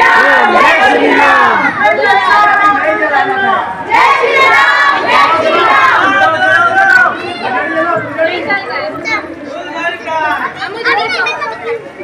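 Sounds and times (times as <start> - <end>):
children calling out: 0.0 - 8.1, 10.4 - 12.0
chatter of voices: 0.0 - 12.0.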